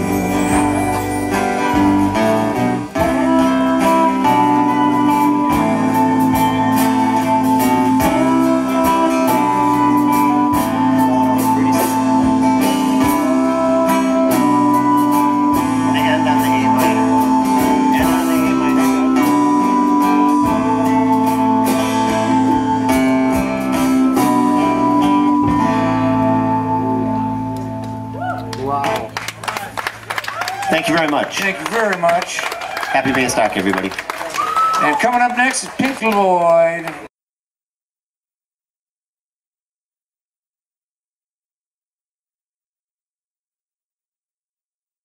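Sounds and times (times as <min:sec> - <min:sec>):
live rock band playing: 0:00.0 - 0:36.7.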